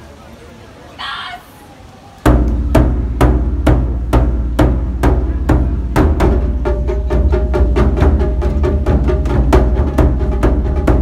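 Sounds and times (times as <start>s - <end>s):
large drum strikes: 2.3s - 11.0s.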